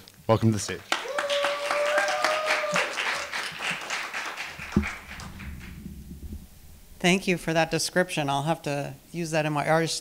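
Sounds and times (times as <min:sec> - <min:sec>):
audience applauding: 0:00.6 - 0:05.8
low rumble: 0:04.6 - 0:08.7.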